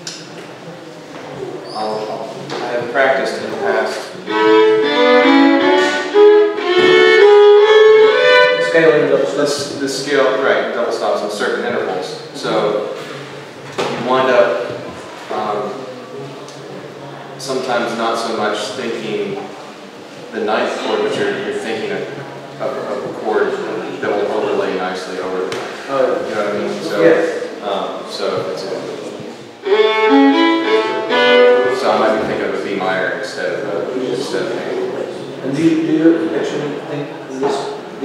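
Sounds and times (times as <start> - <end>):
man speaking: 1.7 - 4.5, 8.6 - 12.9, 17.4 - 19.4, 20.3 - 29.2, 30.8 - 37.9
solo fiddle playing: 4.2 - 9.1, 29.6 - 32.2.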